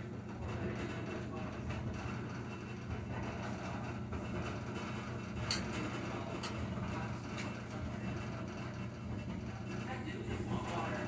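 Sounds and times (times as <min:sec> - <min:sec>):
washing machine humming: 0:00.0 - 0:11.0.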